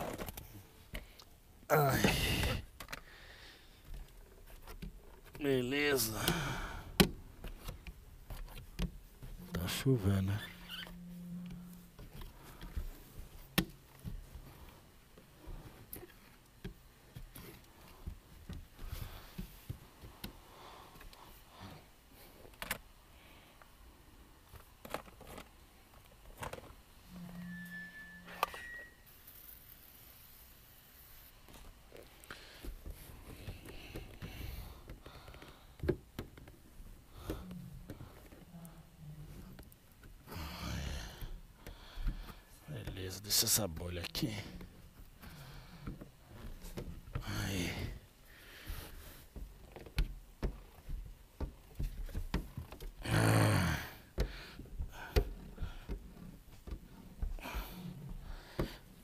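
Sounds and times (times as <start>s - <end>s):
high squeak: 27.1s - 29.2s.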